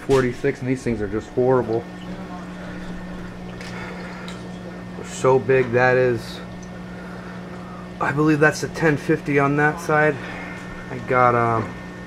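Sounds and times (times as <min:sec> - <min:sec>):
aquarium pumps humming: 0:00.0 - 0:12.0.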